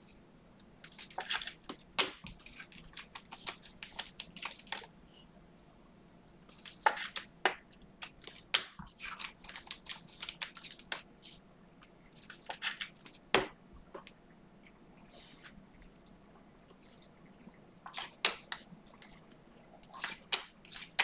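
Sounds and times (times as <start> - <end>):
trading cards clicking and rustling: 0.8 - 4.9, 6.5 - 11.1, 12.2 - 13.2.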